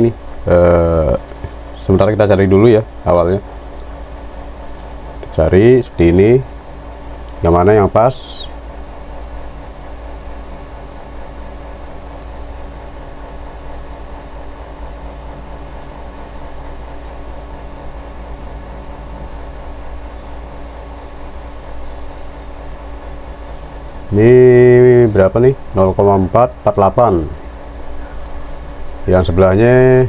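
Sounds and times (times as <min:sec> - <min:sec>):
low hum: 0:00.0 - 0:30.0.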